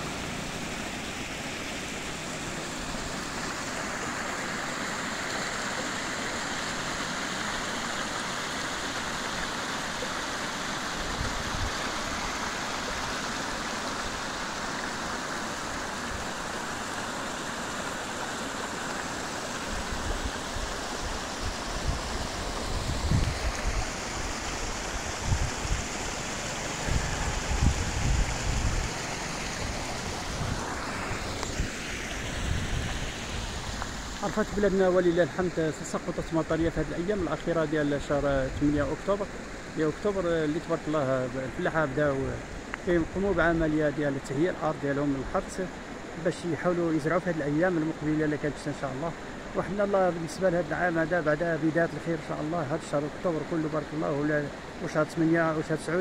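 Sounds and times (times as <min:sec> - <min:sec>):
stream water rippling over stones: 0:00.0 - 0:56.0.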